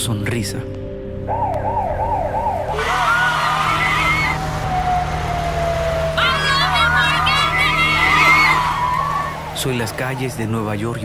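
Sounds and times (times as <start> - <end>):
higher siren: 1.3 - 10.3
siren wailing: 1.3 - 10.4.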